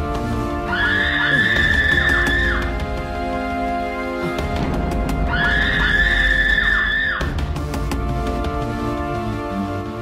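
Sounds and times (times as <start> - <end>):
high shrill screeching tone: 5.3 - 7.3.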